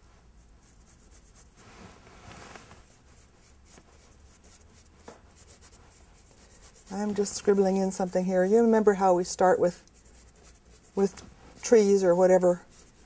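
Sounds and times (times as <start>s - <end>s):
brush scratching on paper: 0.6s - 13.0s.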